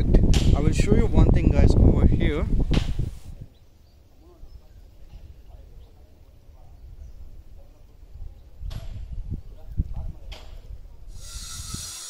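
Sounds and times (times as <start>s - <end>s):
wind rumble on microphone: 0.0s - 3.6s, 4.2s - 12.0s
faint distant sounds: 3.2s - 12.0s
short burst of noise: 11.1s - 12.0s.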